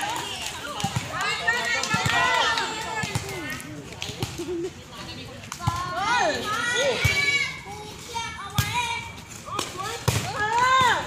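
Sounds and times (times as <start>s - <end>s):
players shouting: 0.0s - 3.5s.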